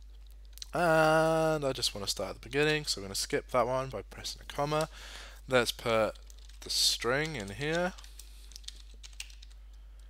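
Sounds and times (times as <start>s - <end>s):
keyboard typing: 6.1s - 10.0s.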